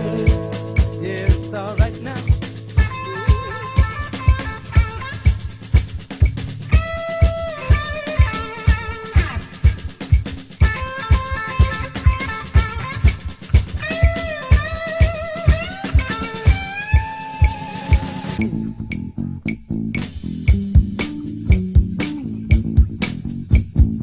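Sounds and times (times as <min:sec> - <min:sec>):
electric guitar lead with bent notes: 0:00.0 - 0:23.0
bass guitar: 0:00.0 - 0:24.0
steady drum beat: 0:00.0 - 0:24.0.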